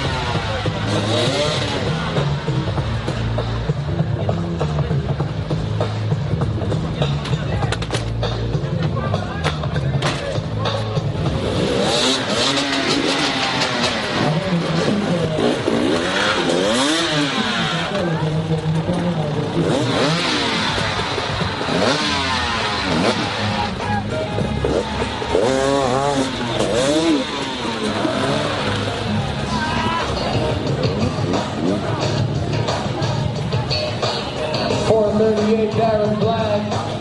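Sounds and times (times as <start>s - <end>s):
background music: 0.0s - 37.0s
dirt bike engines revving: 0.0s - 37.0s.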